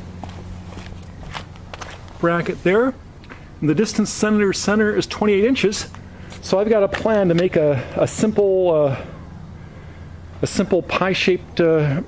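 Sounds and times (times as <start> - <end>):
footsteps on concrete: 0.0 - 3.5
low hum: 0.0 - 12.0.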